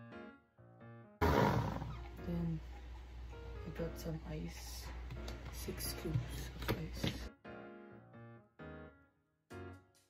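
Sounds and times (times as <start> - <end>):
background music with keyboard notes: 0.0 - 10.0.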